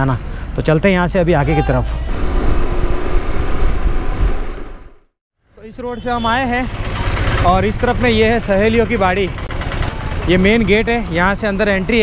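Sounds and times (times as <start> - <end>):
motorbike road noise: 1.7 - 12.0
wind rushing over microphone: 2.1 - 5.1.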